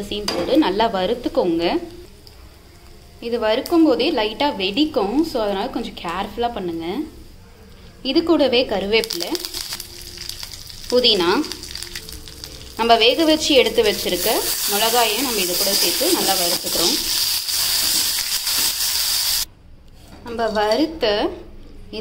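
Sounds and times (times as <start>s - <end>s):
leaves sizzling in hot oil: 9.0s - 19.5s.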